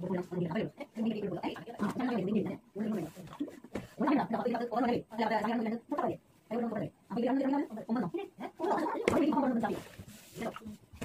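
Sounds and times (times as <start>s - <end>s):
women talking: 0.0s - 10.8s.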